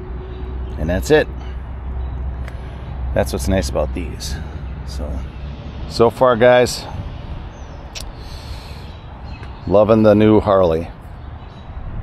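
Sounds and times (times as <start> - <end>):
low outdoor rumble: 0.0 - 12.0
sharp click: 7.9 - 8.2.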